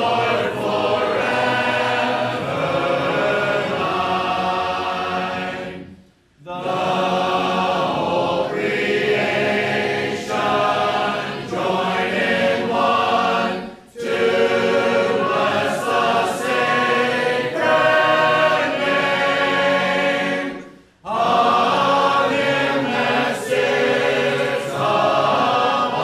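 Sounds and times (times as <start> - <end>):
congregation singing a hymn: 0.0 - 26.0.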